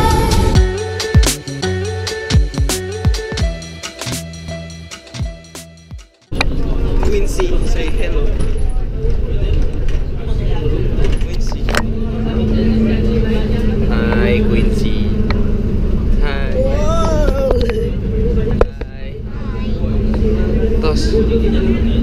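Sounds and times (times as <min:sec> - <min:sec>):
bus engine and road rumble: 0:00.0 - 0:01.9, 0:06.2 - 0:22.0
passengers talking: 0:06.3 - 0:22.0.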